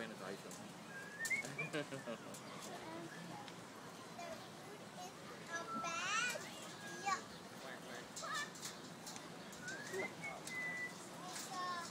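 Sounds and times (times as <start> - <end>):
bird whistled call: 0.8 - 2.2, 5.6 - 6.2, 9.4 - 11.0.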